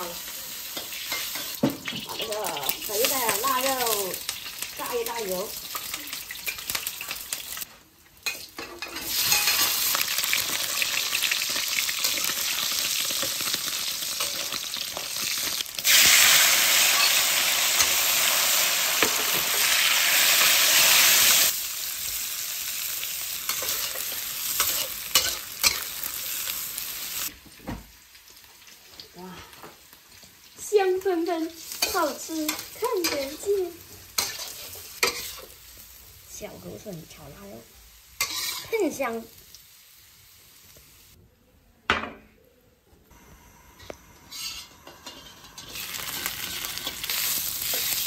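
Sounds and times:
pork sizzling in oil: 0.0 - 41.2, 43.2 - 48.0
spatula stirring and scraping wok: 0.2 - 4.7, 5.6 - 16.1, 23.0 - 27.3, 31.4 - 35.8, 38.2 - 39.1, 44.2 - 48.0.

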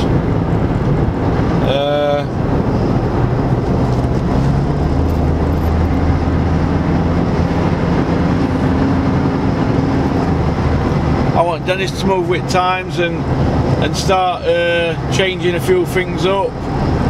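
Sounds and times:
car cabin road drone: 0.0 - 17.0.

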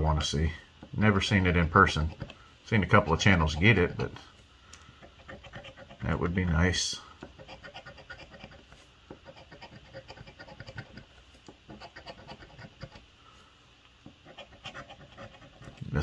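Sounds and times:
coin scraping scratch card: 5.0 - 6.2, 7.3 - 13.0, 14.2 - 16.0.

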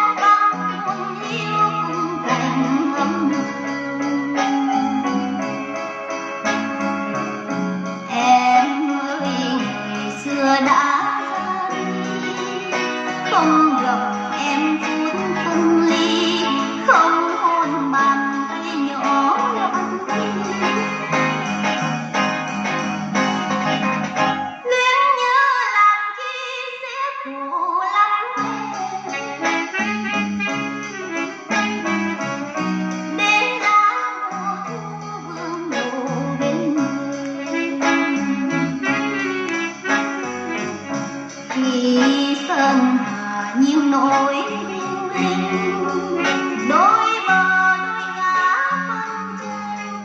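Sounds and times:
music from vinyl record: 0.0 - 24.9, 28.4 - 50.0.

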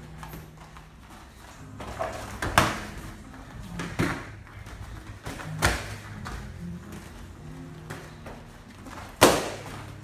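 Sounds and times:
gloves and shin guards tapping: 0.0 - 7.2, 7.8 - 10.0.

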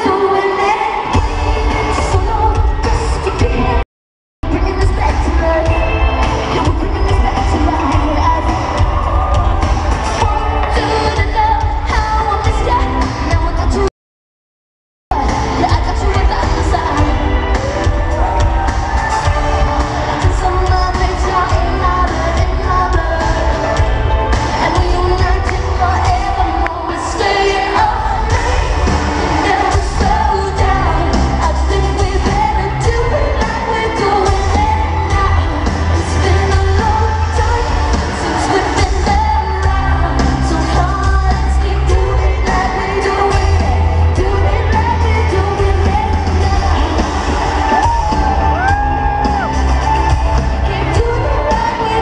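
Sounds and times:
guitar: 0.0 - 3.8, 4.4 - 13.9, 15.1 - 52.0
live pop music: 0.0 - 3.8, 4.4 - 13.9, 15.1 - 52.0
woman singing: 0.0 - 3.8, 4.4 - 13.9, 15.1 - 52.0
heavy bass: 4.4 - 13.9, 15.1 - 27.0, 27.8 - 52.0.

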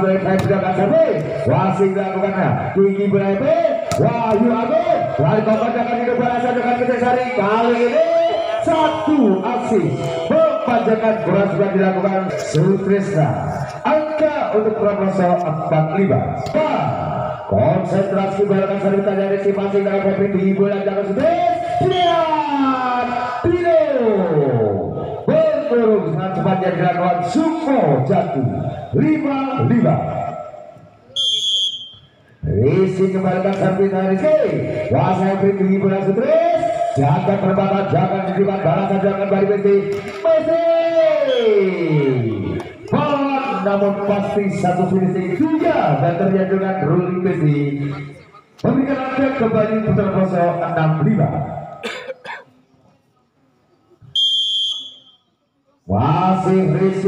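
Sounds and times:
referee's whistle blast: 21.8 - 22.3, 31.1 - 32.3, 41.2 - 41.7, 54.1 - 55.3.

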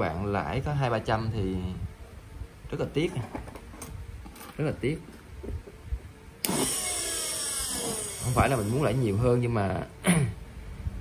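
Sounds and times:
electric motor running: 6.4 - 9.2.

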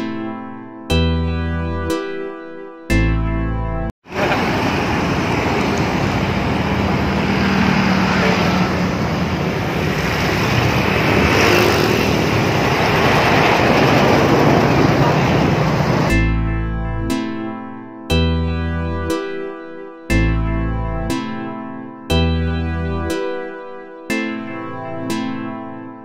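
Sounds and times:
motorcycles passing: 4.1 - 16.1
loud steady traffic rush: 4.1 - 16.2
trucks passing: 4.1 - 16.3.

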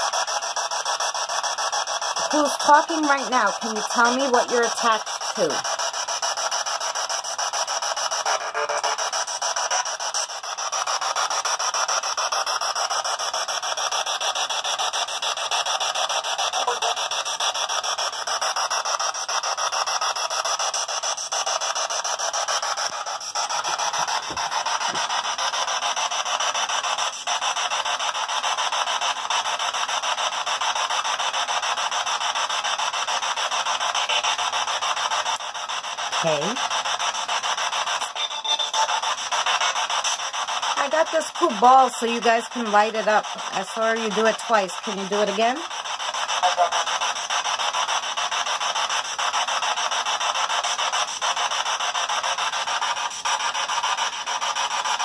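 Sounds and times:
choppy radio static hiss: 0.0 - 55.0.

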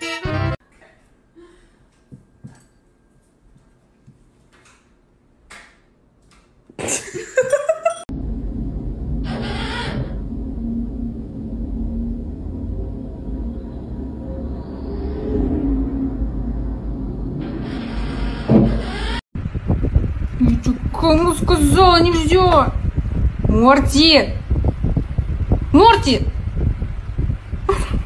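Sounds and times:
steady low rumble: 8.1 - 28.0.

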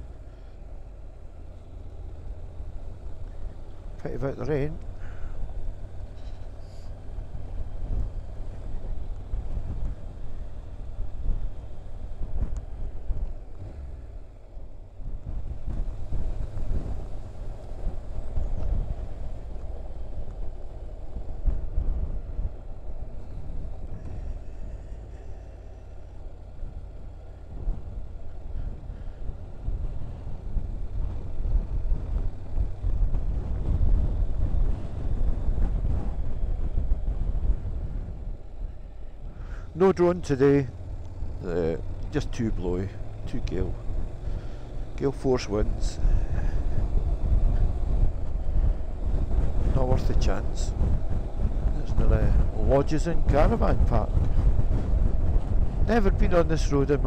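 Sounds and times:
wind buffeting microphone: 4.5 - 57.0.

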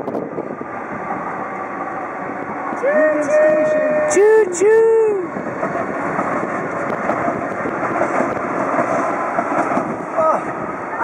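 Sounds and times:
light rail train passing: 0.0 - 11.0.

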